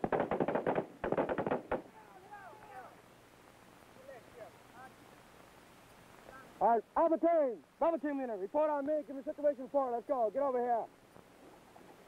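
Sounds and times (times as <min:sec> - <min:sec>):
gunfire bursts: 0:00.0 - 0:02.0.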